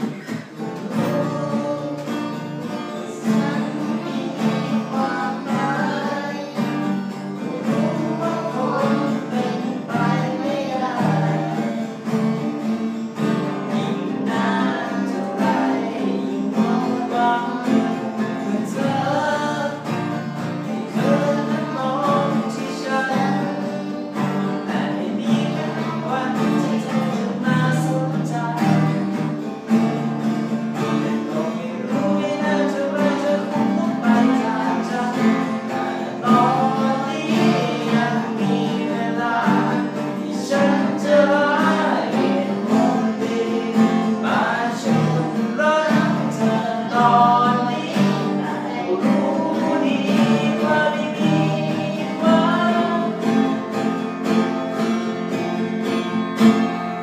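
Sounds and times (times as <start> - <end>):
man singing: 0.0 - 29.8, 30.8 - 54.1
acoustic guitars strummed: 0.0 - 57.0.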